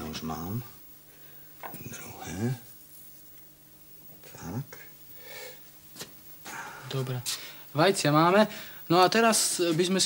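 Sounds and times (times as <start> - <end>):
man speaking: 1.8 - 2.7, 6.8 - 10.0.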